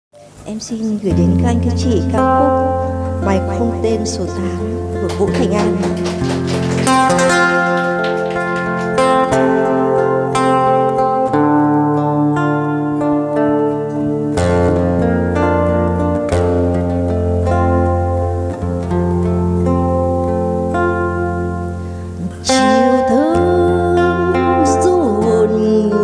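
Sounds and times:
nylon-string guitar plucked chords: 0:00.2 - 0:26.0.

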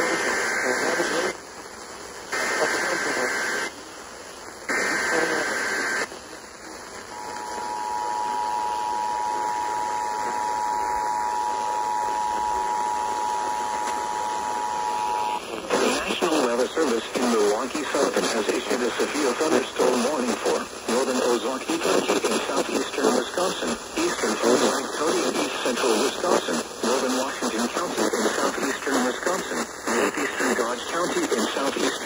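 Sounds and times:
two-tone attention signal: 0:07.1 - 0:15.4.

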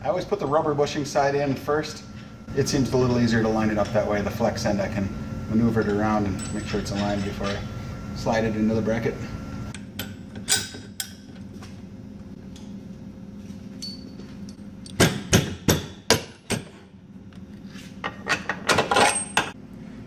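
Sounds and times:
metal arm clanking on bracket: 0:06.4 - 0:07.7.

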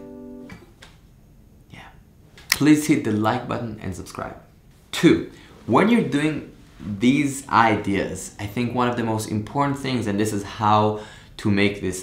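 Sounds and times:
acoustic guitar chord ringing: 0:00.0 - 0:00.7.

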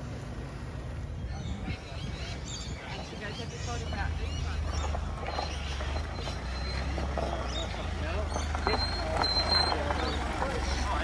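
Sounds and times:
low engine rumble: 0:00.0 - 0:11.0
tyres crackling over gravel: 0:03.0 - 0:11.0.

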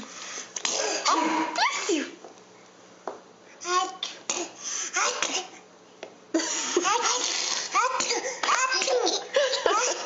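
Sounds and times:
babies giggling and squealing: 0:06.4 - 0:10.0.

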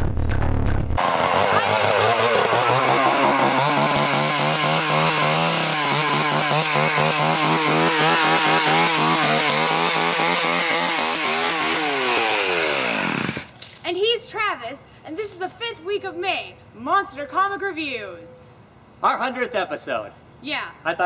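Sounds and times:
chainsaw running: 0:01.0 - 0:13.6.

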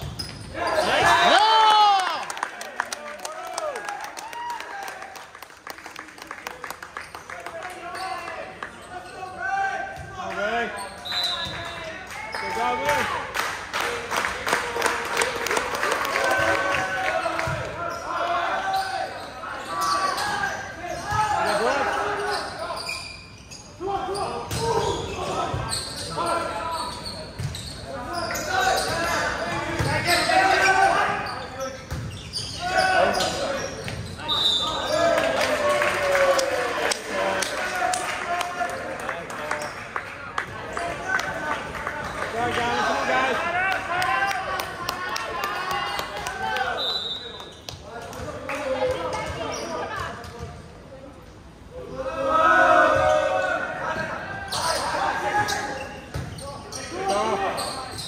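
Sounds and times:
people shouting and talking: 0:00.0 - 0:05.2, 0:07.2 - 0:58.0.

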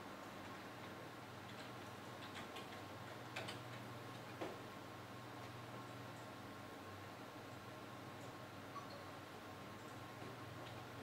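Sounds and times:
keyboard and mouse clicks: 0:00.8 - 0:04.5.

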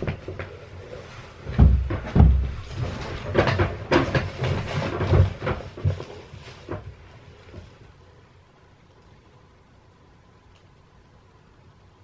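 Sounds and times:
heavy thumps: 0:00.0 - 0:07.9
light clatters: 0:00.0 - 0:08.0.

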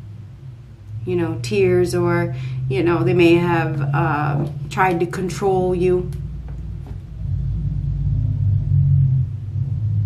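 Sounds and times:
loud low rumble with droning hum: 0:00.0 - 0:10.0.

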